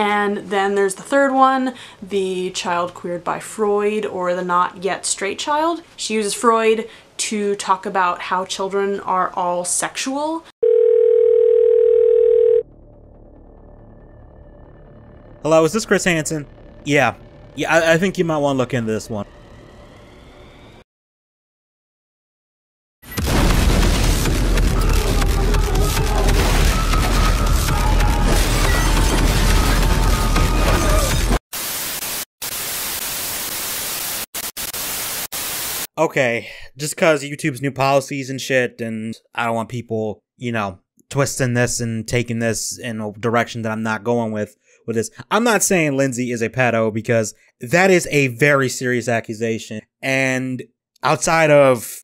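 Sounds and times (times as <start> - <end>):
telephone ringing tone: 10.6 - 12.7
loud low rumble: 12.7 - 20.8.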